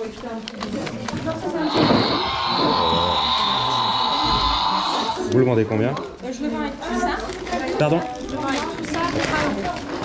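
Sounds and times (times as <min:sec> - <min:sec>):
electronic toy dinosaur roar: 0:01.6 - 0:05.4.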